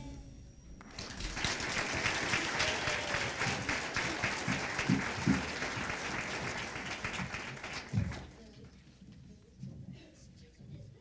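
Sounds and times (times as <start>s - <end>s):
audience clapping: 0.8s - 8.8s.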